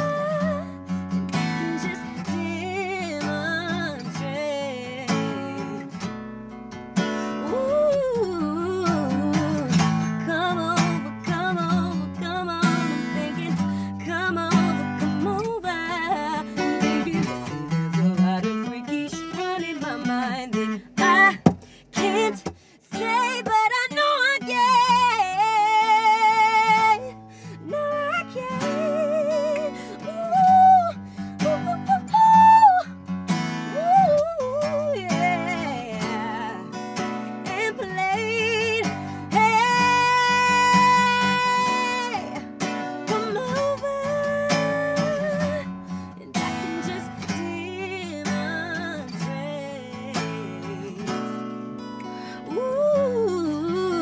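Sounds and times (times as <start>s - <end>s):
woman singing: 0.0s - 6.2s, 7.0s - 54.0s
acoustic guitar: 0.0s - 54.0s.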